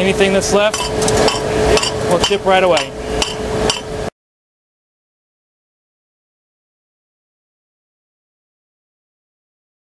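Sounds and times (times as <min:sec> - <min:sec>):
steady hum: 0:00.0 - 0:04.1
steel plates clinking on metal slats: 0:00.7 - 0:03.9.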